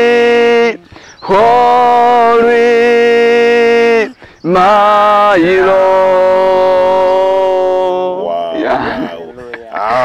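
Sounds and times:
man singing a long note: 0:00.0 - 0:08.8.

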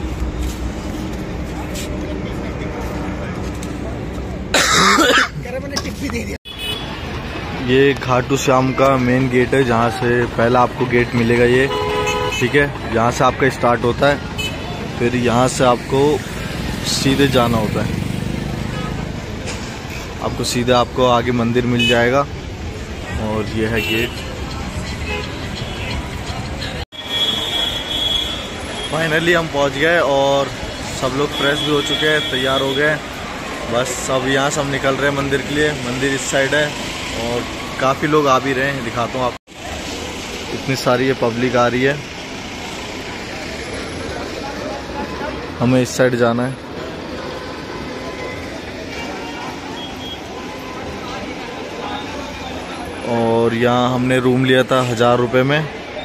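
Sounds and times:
vehicle engine running nearby: 0:00.0 - 0:04.5, 0:38.4 - 0:45.8
road traffic rumble: 0:00.0 - 0:56.0
distant crowd voices: 0:05.8 - 0:56.0.

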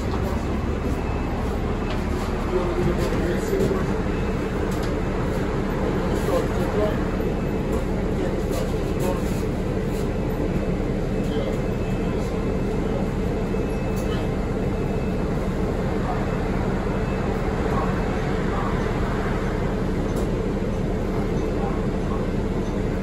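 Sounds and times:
bus engine humming: 0:00.0 - 0:23.0.

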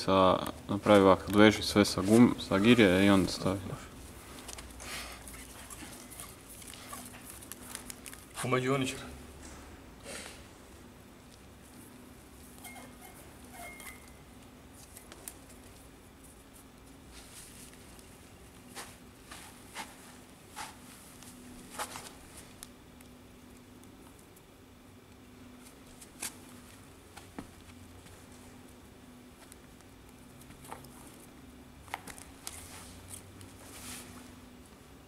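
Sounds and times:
faint steady hum: 0:00.0 - 0:35.0.

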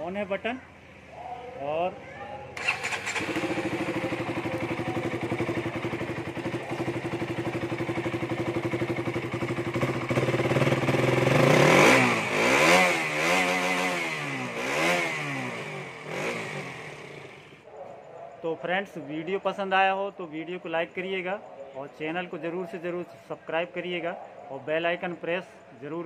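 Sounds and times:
motorcycle engine idling and revving: 0:00.0 - 0:17.7.

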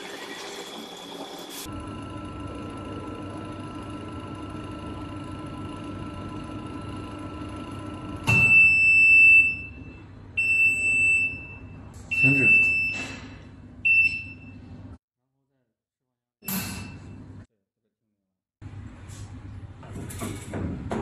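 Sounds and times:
vacuum mixer humming: 0:00.0 - 0:08.5
alarm buzzer beeps: 0:08.3 - 0:13.2.

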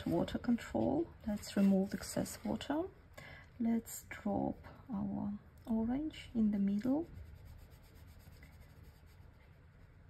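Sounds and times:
brush touching wet paper: 0:00.0 - 0:03.1, 0:06.4 - 0:10.0
faint low hum: 0:00.0 - 0:10.0.

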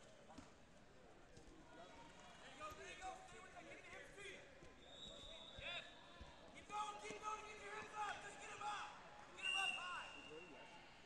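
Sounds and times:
shouts and voices in a gym: 0:00.0 - 0:11.0.

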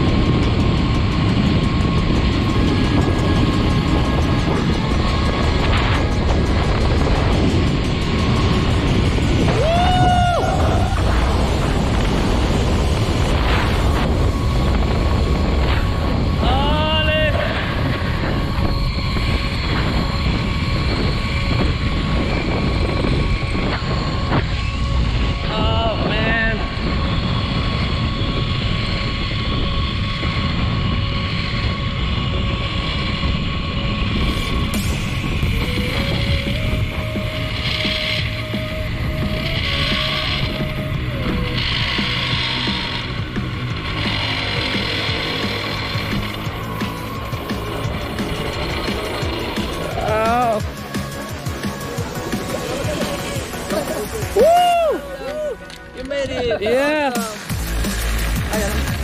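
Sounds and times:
trolley whining on steel cable: 0:00.0 - 0:59.0
wind rushing over microphone: 0:00.0 - 0:59.0
person whooping: 0:09.5 - 0:11.6, 0:52.8 - 0:55.7.

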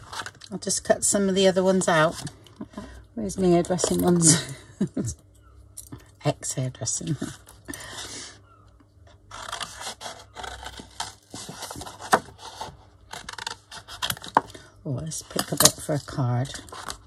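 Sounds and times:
paper rustling: 0:09.3 - 0:14.4.

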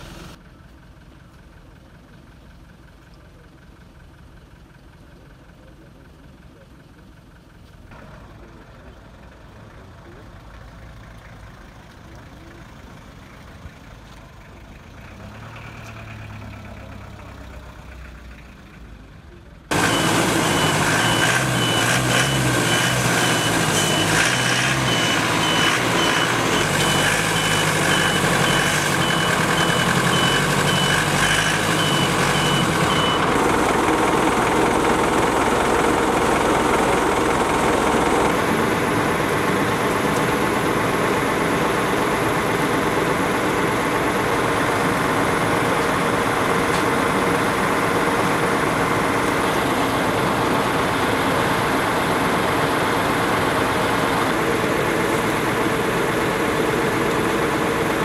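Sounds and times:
van engine running: 0:00.0 - 0:58.0
reversing beeper: 0:19.7 - 0:38.9.

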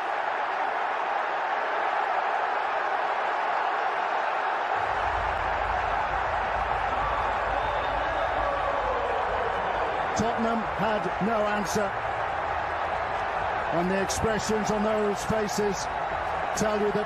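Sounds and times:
stadium crowd cheering: 0:00.0 - 0:17.0.

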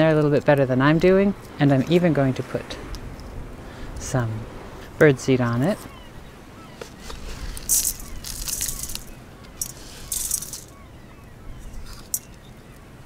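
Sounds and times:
birdseed rustling and crunching: 0:06.9 - 0:10.8.

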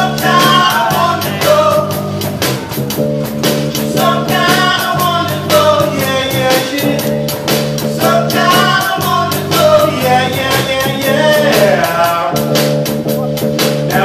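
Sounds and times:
man singing: 0:00.0 - 0:02.3, 0:03.8 - 0:07.2, 0:07.9 - 0:14.0
drum kit steady beat: 0:00.0 - 0:14.0
electric bass: 0:00.0 - 0:14.0.

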